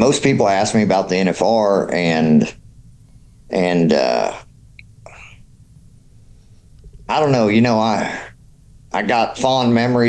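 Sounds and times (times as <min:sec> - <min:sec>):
low steady room hum: 0:00.0 - 0:10.0
faint breath: 0:03.0 - 0:03.5, 0:05.0 - 0:07.1.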